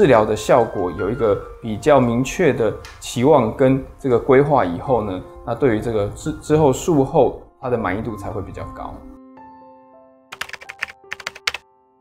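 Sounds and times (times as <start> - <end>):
soft background music: 0.0 - 12.0
keyboard key clicks: 10.3 - 11.6.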